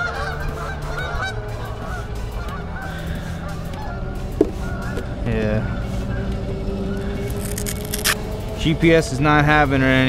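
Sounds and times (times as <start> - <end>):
outdoor background hum: 0.0 - 10.0.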